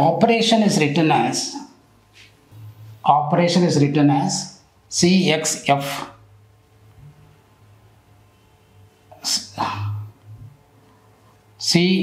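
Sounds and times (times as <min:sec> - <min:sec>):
man sneezing: 0:09.5 - 0:10.1.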